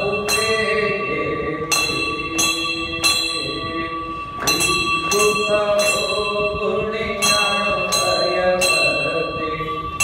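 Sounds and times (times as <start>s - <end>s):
brass bell ringing: 0.0s - 10.0s.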